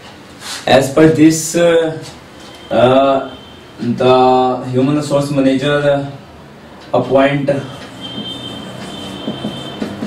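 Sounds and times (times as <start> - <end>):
marker squeaking on a whiteboard: 2.1 - 4.0, 7.6 - 10.0.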